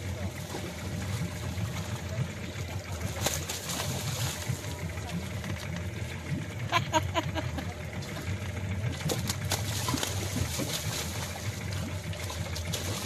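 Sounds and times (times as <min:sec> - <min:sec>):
boat engine humming: 0:00.0 - 0:13.0
seawater splashing and churning: 0:00.0 - 0:13.0.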